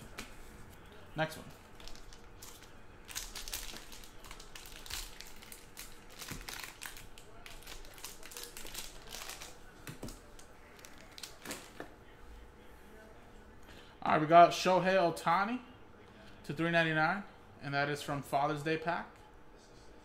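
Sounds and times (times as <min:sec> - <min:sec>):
foil wrapper crinkling: 0:01.6 - 0:11.8.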